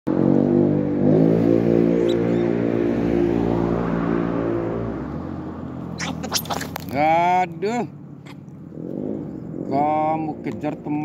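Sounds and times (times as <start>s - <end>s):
vehicle engine humming: 0.2s - 9.7s.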